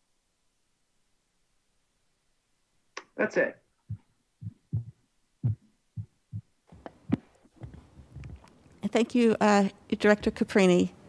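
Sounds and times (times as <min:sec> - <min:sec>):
short dull thumps: 0:03.9 - 0:08.5, 0:10.1 - 0:10.5.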